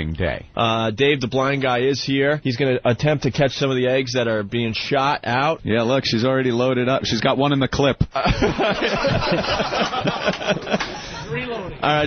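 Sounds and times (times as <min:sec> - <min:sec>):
people laughing: 0:08.2 - 0:11.8.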